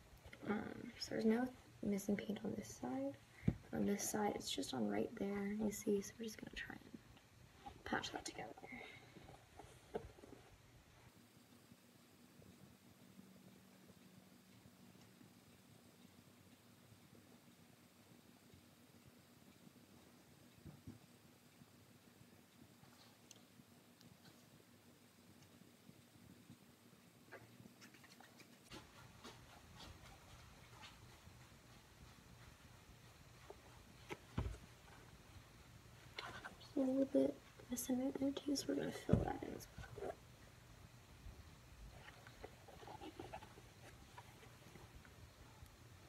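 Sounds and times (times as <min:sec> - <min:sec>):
faint steady hum: 0:00.0 - 0:46.0
soft ticks: 0:11.4 - 0:35.5.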